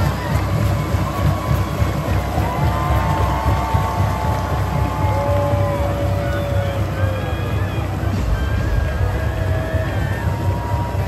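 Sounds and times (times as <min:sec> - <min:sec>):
loud crowd: 0:00.0 - 0:11.0
music in a stadium: 0:00.0 - 0:11.0.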